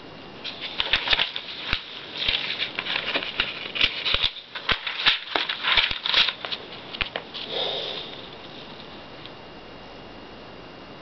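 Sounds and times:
paper pamphlet clicks: 0.5s - 7.3s
person sniffing: 7.4s - 8.3s.

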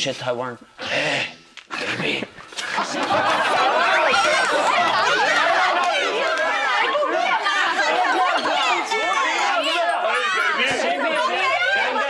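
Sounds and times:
crowd of overlapping voices: 0.8s - 12.0s.

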